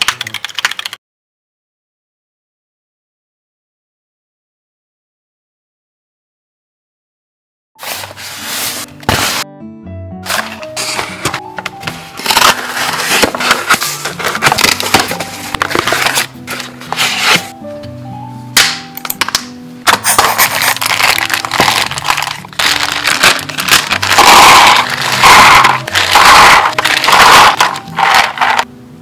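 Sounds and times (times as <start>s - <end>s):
cardboard box being opened: 7.8s - 9.4s, 10.2s - 17.5s, 19.9s - 28.6s
background music: 7.8s - 29.0s
plastic tub cracking and rustling: 10.3s - 17.4s, 19.2s - 28.7s.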